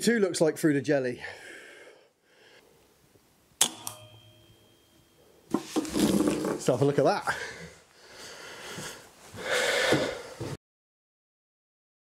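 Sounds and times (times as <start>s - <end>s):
faint ringing tone: 3.8s - 5.5s.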